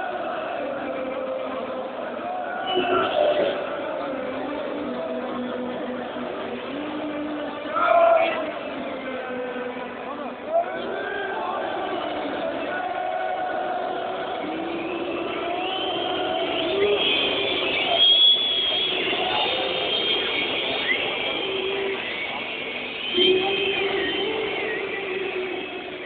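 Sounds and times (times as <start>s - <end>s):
stadium crowd chanting and shouting: 0.0s - 26.0s.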